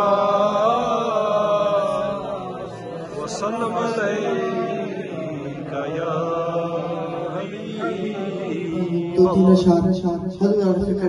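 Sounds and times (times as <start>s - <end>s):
man chanting with held notes: 0.0s - 11.0s.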